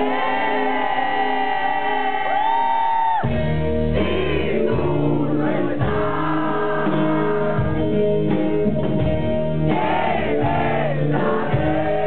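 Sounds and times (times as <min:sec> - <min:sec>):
man singing: 0:04.0 - 0:08.0.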